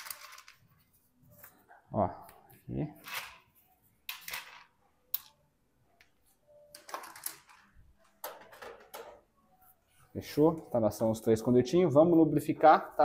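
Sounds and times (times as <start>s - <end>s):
small parts clicking and rustling: 0.0s - 0.7s, 6.7s - 8.8s.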